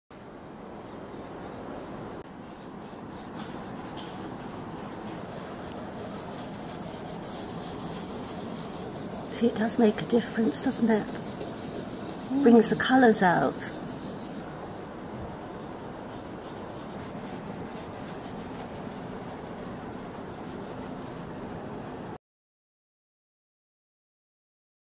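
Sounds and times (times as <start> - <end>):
cloth rubbing on painting: 0.2 - 22.2.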